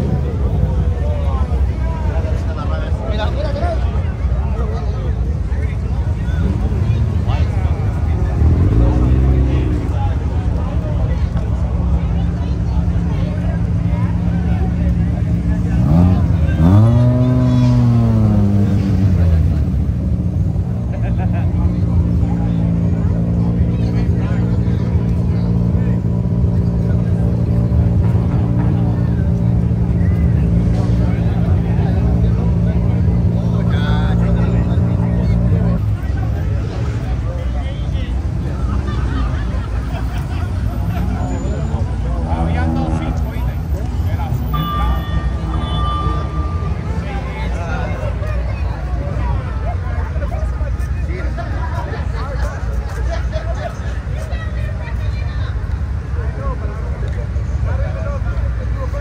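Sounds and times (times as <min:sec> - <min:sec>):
car engines revving hard: 0:00.0 - 0:59.0.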